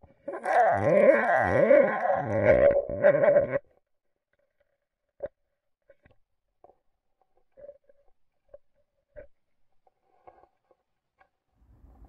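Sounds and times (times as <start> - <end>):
water gurgling and bubbling: 0.1 - 3.6.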